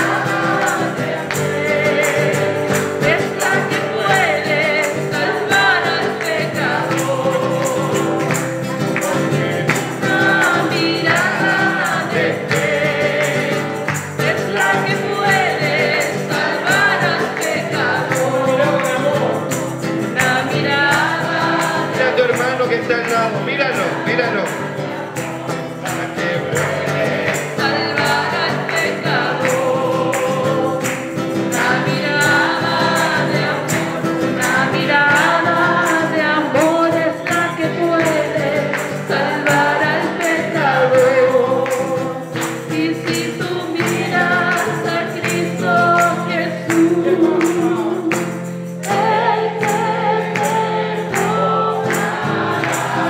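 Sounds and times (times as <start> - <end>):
woman singing: 0.0 - 8.4, 9.9 - 19.3, 20.1 - 21.9, 27.4 - 31.0, 31.6 - 53.0
high percussive hits: 0.0 - 53.0
strummed classical guitar: 0.0 - 53.0.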